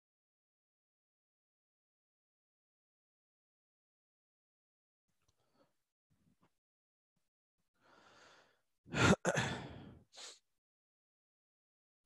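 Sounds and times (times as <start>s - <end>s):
man breathing close to microphone: 7.8s - 10.4s
man sighing: 8.9s - 10.3s.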